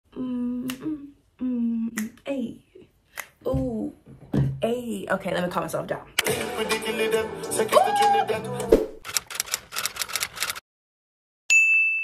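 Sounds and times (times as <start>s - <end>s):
woman humming: 0.1s - 2.2s
sharp clicks: 9.0s - 10.6s.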